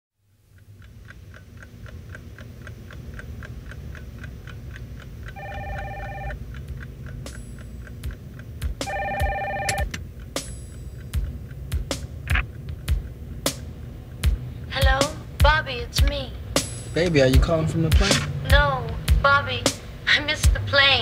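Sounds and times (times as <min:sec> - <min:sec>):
low hum: 0:00.2 - 0:21.0
clock ticking: 0:00.4 - 0:21.0
desk telephone ringing: 0:05.4 - 0:06.4, 0:08.8 - 0:09.9.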